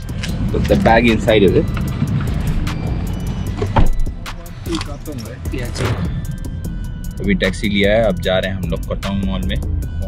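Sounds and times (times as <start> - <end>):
background music: 0.0 - 10.0
car engine rumble: 0.0 - 10.0
heavy thump: 3.5 - 4.3.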